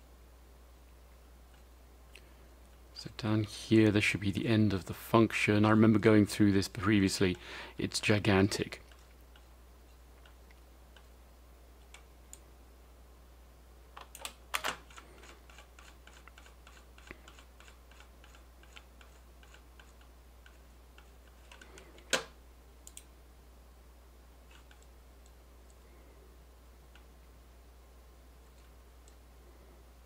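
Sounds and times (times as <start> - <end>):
computer keyboard and mouse clicks: 14.0 - 23.1.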